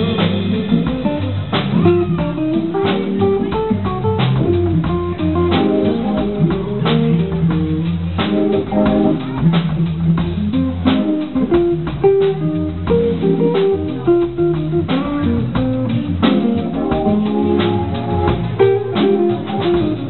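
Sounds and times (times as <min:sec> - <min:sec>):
live jazz trio: 0:00.0 - 0:20.0.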